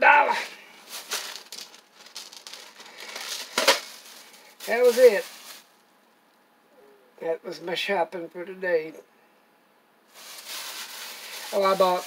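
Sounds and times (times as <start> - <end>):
plastic bag rustling: 0.4 - 5.8, 10.1 - 12.0.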